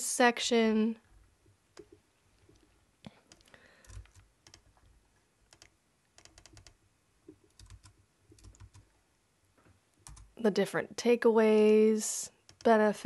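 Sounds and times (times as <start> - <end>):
computer keyboard and mouse clicks: 3.3 - 4.9, 5.5 - 8.9, 10.0 - 10.3, 12.4 - 12.7.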